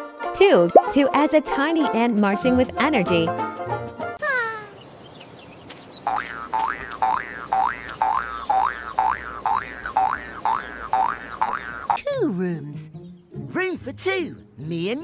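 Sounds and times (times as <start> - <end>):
light background music: 0.0 - 4.2, 12.0 - 15.0
voice: 0.4 - 3.3, 12.0 - 12.9, 13.5 - 15.0
cartoon boing effect: 6.1 - 12.0.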